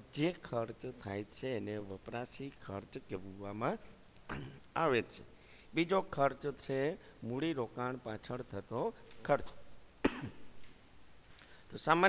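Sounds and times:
person coughing: 4.3 - 4.7, 10.0 - 10.5.

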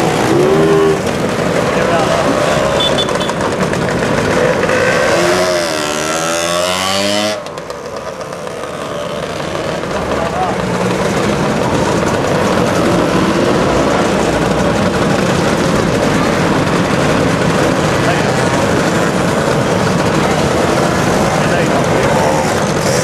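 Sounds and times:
crowd chatter: 0.0 - 5.9, 7.4 - 23.0
scooter engines passing: 0.0 - 23.0.

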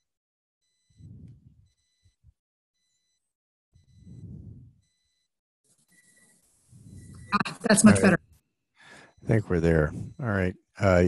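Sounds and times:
faint muffled low sounds: 1.0 - 1.6, 4.0 - 4.8, 6.7 - 8.2.

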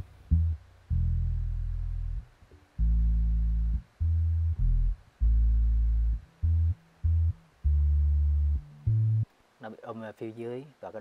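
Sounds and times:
low bass notes: 0.0 - 9.3.

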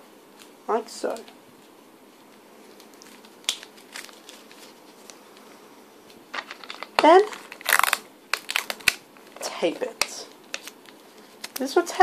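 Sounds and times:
wrapping paper rustling: 1.1 - 12.0
sticky tape pulled off roll: 7.5 - 9.0.

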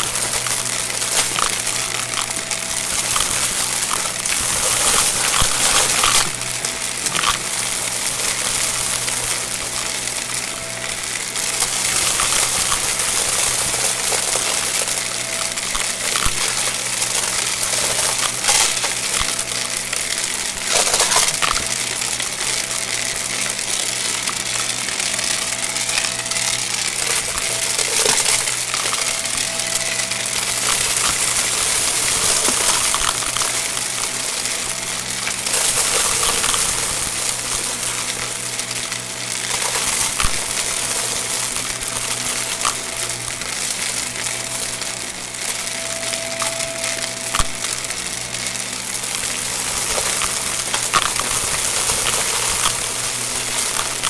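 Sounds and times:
debris rattling through vacuum: 0.0 - 54.0
vacuum cleaner running: 0.0 - 54.0.

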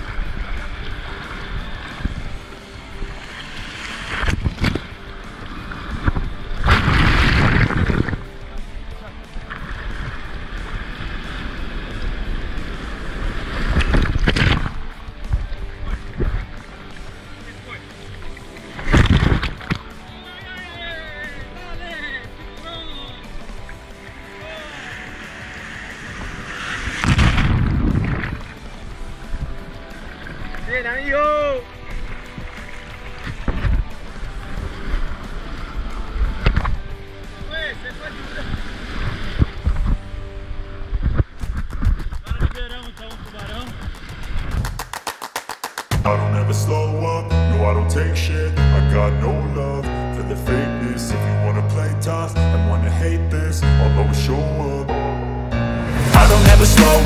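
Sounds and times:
waves splashing over camera: 0.0 - 46.1
surf foaming: 0.0 - 48.6
background music: 0.0 - 57.0.

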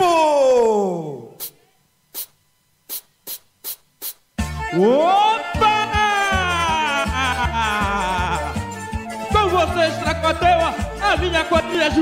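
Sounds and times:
short sharp bursts of hiss: 1.4 - 4.4.

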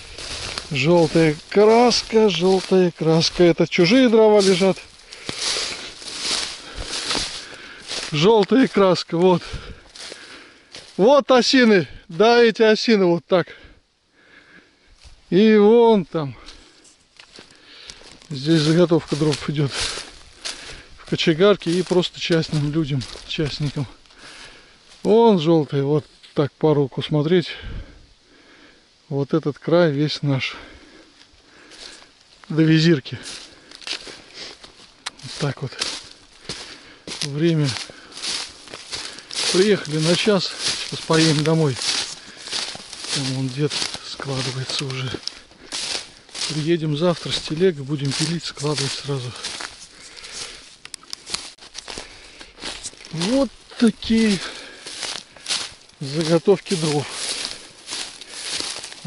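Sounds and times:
footsteps through dry leaves: 0.0 - 12.5, 15.0 - 26.4, 30.5 - 59.0.

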